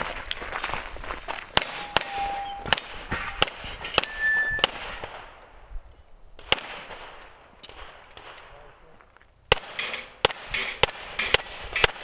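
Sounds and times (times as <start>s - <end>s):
steel targets clanging: 1.6s - 5.1s, 9.5s - 12.0s
pistol shots: 1.6s - 5.4s, 6.4s - 8.7s, 9.5s - 12.0s.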